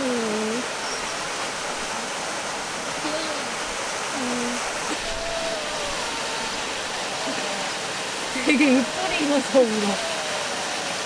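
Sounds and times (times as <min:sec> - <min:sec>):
mountain stream rushing: 0:00.0 - 0:11.0.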